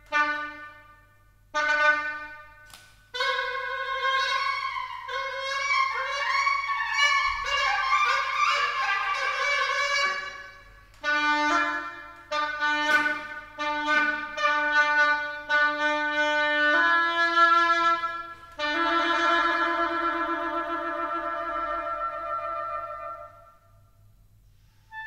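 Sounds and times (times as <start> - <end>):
solo oboe playing: 0.0 - 23.8.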